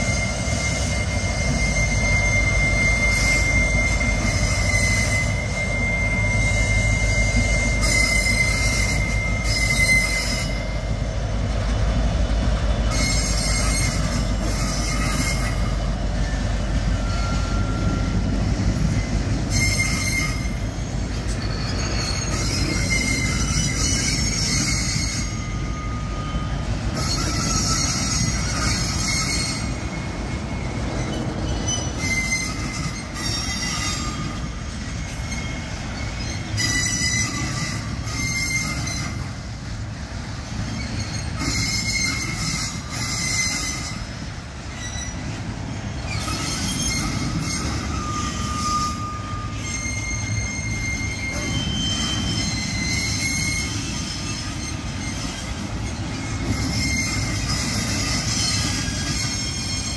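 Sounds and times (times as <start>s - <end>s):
metallic wheel squeals: 0.0s - 12.0s, 12.6s - 59.9s
train wheels rumbling on rails: 0.0s - 59.9s.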